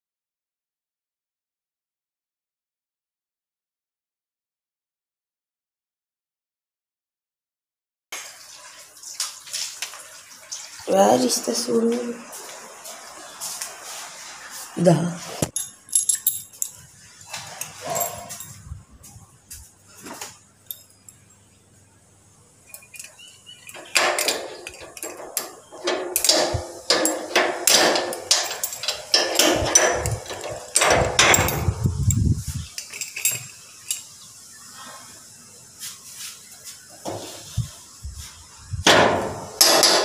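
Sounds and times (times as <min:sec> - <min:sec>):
running water splashing: 0:08.2 - 0:15.5
padlock knocking and rattling on metal: 0:15.5 - 0:16.8, 0:22.8 - 0:32.2, 0:32.8 - 0:34.0, 0:38.9 - 0:40.0.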